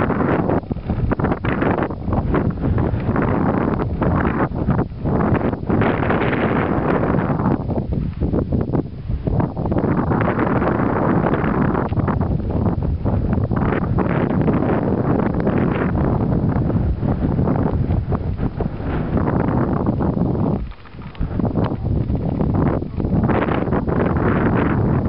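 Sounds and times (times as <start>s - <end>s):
gusty wind buffeting microphone: 0.0s - 25.0s.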